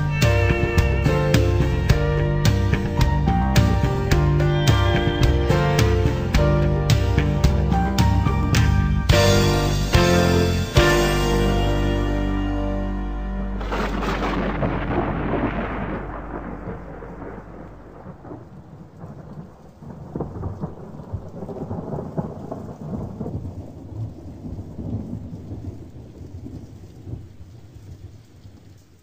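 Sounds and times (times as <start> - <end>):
thunder rolling: 0.0 - 28.2
steady rain: 0.0 - 29.0.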